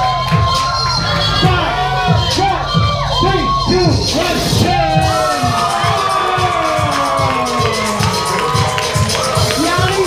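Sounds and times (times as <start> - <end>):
crowd cheering: 0.0 - 10.0
hip-hop beat with kick drum: 0.0 - 10.0.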